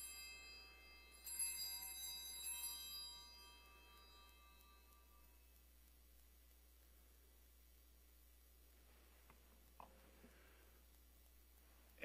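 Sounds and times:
small altar bells shaking: 0.0 - 5.5.

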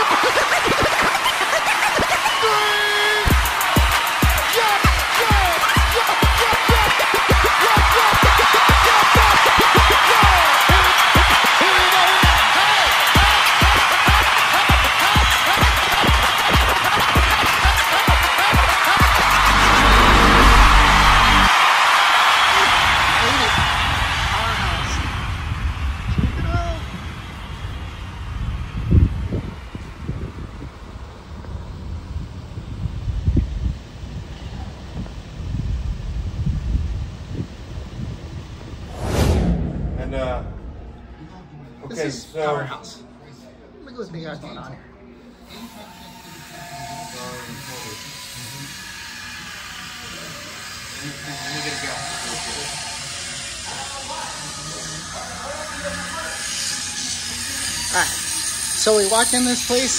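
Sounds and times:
club dance music: 0.0 - 21.5
crowd noise: 0.0 - 30.2, 39.8 - 59.9.

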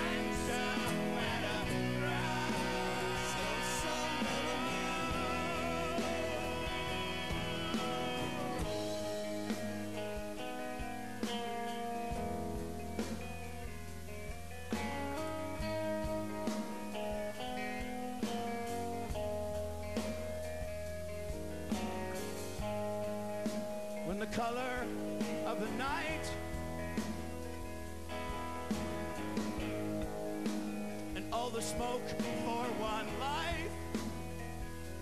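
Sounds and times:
rock band playing: 0.0 - 35.0.

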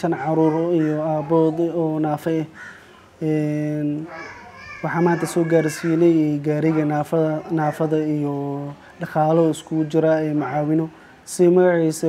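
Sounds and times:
man talking: 0.0 - 2.6, 3.2 - 12.0.

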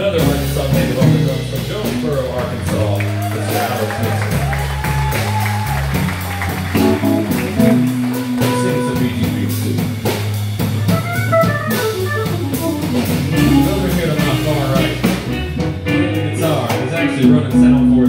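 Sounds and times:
live band instrumental groove: 0.0 - 18.0.

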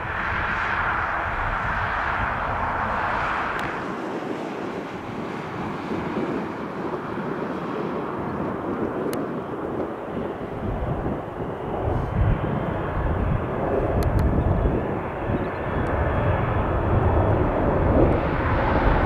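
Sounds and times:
jet engines at takeoff: 0.0 - 19.0.

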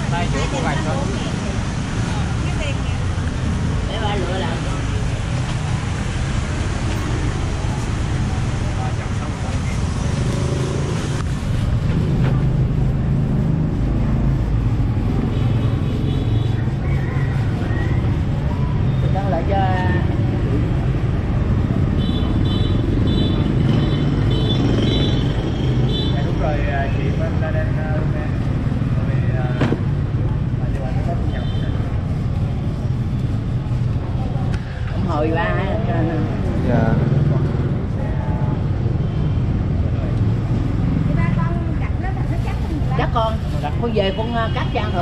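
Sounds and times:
motorbike engines idling and passing: 0.0 - 45.0.

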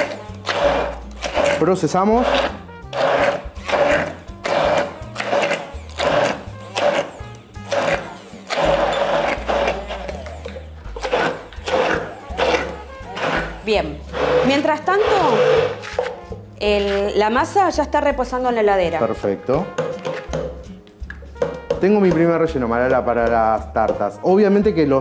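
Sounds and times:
immersion blender whirring: 0.0 - 17.2.

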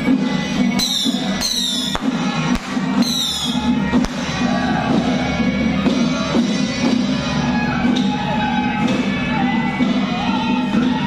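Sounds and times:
firecrackers cracking: 1.6 - 3.4.

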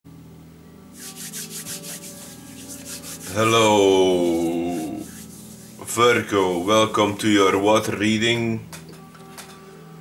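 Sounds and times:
quick rhythmic scraping strokes: 1.0 - 7.4.

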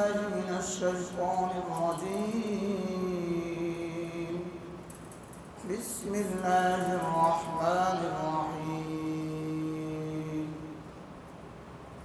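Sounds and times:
man chanting recitation: 0.0 - 4.8, 5.6 - 10.8.

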